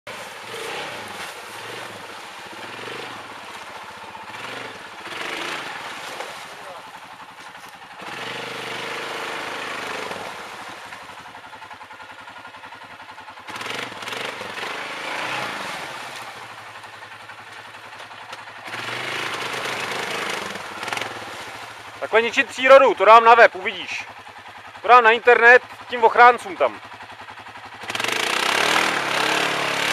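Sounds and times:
churned water: 0.1 - 29.9
quad bike engine revving: 0.1 - 29.9.

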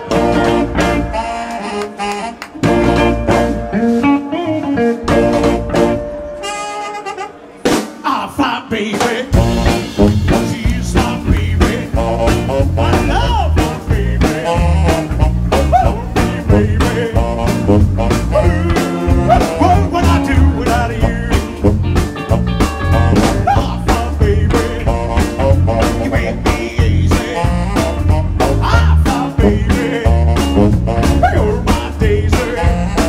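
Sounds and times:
electric bass: 0.0 - 6.4, 9.3 - 33.0
electric guitar: 0.0 - 7.8, 9.4 - 33.0
saxophone: 0.0 - 7.8, 13.9 - 33.0
drum kit beat: 0.0 - 33.0.

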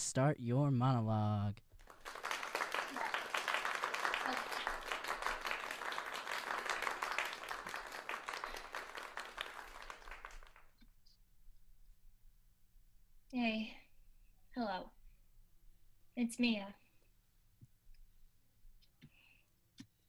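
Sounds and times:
applause: 1.8 - 10.8.

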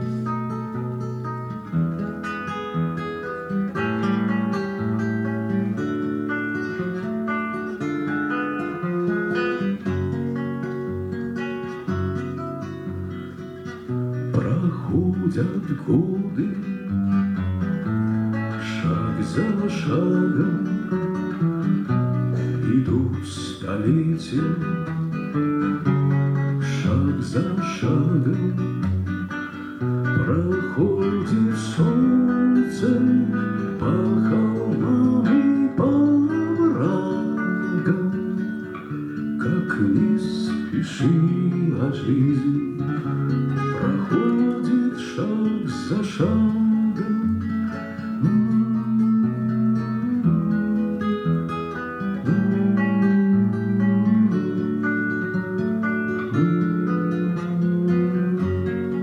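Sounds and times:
acoustic guitar: 0.0 - 59.0
man singing: 14.2 - 17.0, 18.3 - 21.5, 22.3 - 59.0.

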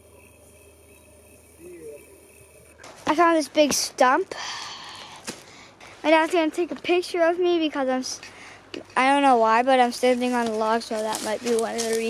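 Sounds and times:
low outdoor background: 0.0 - 12.0.

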